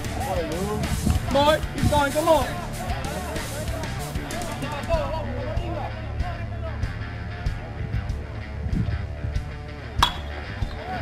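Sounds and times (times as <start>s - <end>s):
music playing: 0.0s - 11.0s
spectators chatting: 0.0s - 11.0s.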